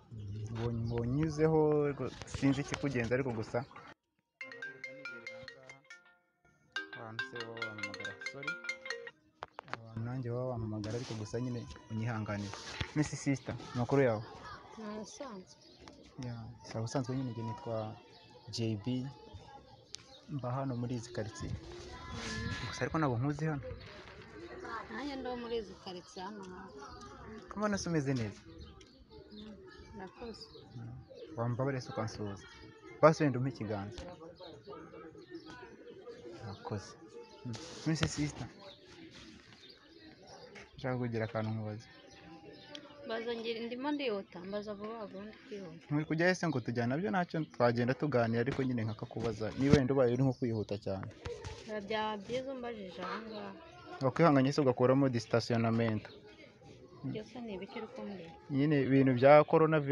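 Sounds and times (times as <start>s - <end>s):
two people talking: 0.0s - 4.0s, 6.8s - 59.9s
phone ringtone chiming melody: 4.4s - 9.2s.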